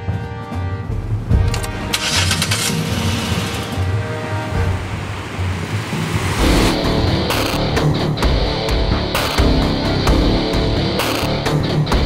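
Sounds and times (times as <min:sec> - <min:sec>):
car engine cranking and running: 0:01.0 - 0:11.8
loud rock music from car stereo: 0:01.2 - 0:12.0.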